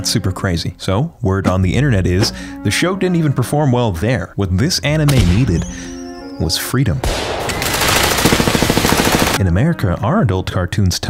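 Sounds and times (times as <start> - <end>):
machine-gun fire: 7.0 - 9.4.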